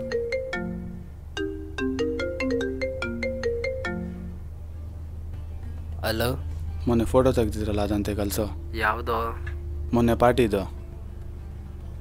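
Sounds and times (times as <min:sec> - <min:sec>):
mobile phone ringtone: 0:00.0 - 0:04.4.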